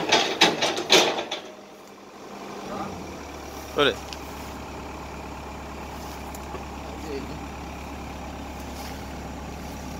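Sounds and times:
excavator diesel engine idling: 0.0 - 9.9.

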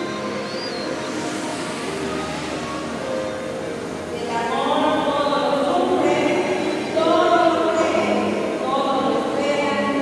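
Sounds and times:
choir singing long notes: 0.0 - 9.4.

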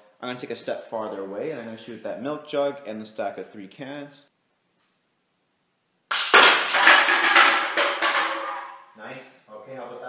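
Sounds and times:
pellets clattering on jug and cans: 6.1 - 8.8.

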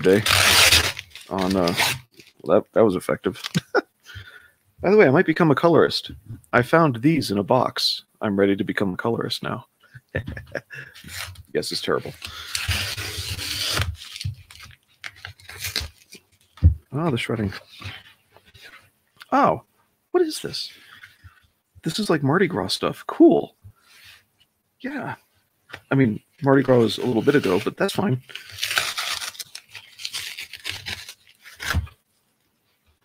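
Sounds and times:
cardboard tearing: 0.0 - 2.4, 12.0 - 16.5, 26.9 - 32.0.

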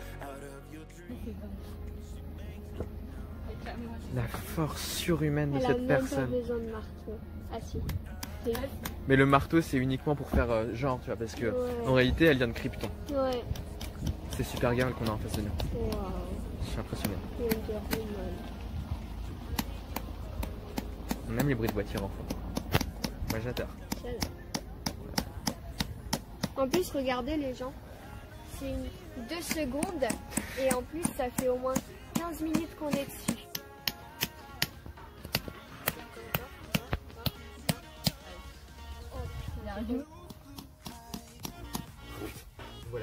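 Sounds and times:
music playing: 0.0 - 43.0
hammer striking tent peg: 20.7 - 26.6.

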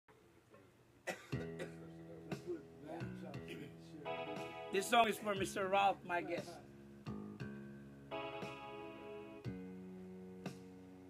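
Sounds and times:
backing music with held chords: 1.1 - 11.0.

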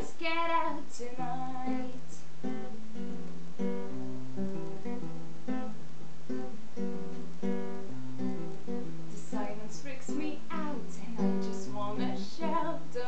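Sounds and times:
classical guitar strumming chords: 0.0 - 13.0.

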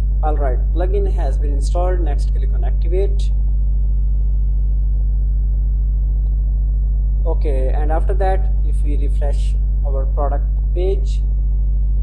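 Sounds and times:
loud low electrical hum: 0.0 - 12.0.

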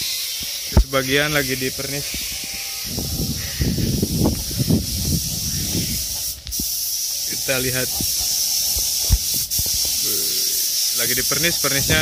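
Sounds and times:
spray gun hissing: 2.8 - 12.0.

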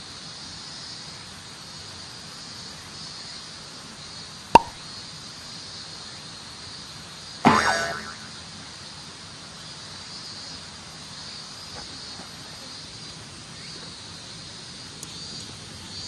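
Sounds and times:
comic pop: 4.6 - 4.8, 7.5 - 8.4
springy boing falling in pitch: 4.6 - 4.8, 7.5 - 8.4.

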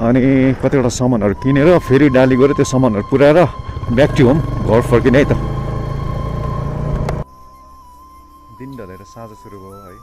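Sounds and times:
man talking: 0.0 - 5.5, 8.5 - 10.0
wind and road noise: 0.0 - 7.2
faint music: 0.2 - 10.0
motorcycle engine running: 2.0 - 7.2.

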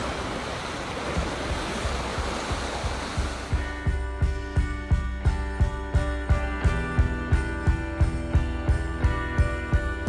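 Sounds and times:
sea surf washing: 0.0 - 5.6
low drum beats: 1.0 - 10.0
sustained music chords: 1.4 - 10.0.

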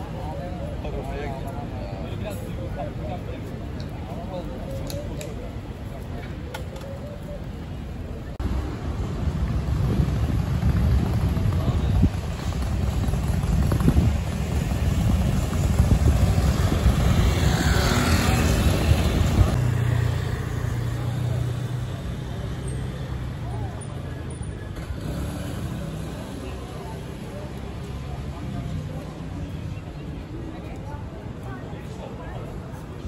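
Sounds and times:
passers-by voices: 0.0 - 33.0
vehicle engine and tyres rumbling: 0.0 - 33.0.

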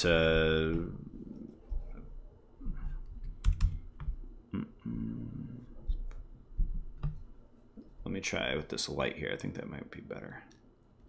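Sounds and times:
keyboard keystrokes: 3.2 - 4.1.

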